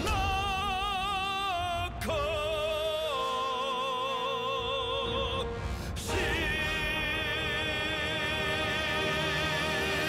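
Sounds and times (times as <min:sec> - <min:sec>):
person singing with vibrato: 0:00.0 - 0:10.0.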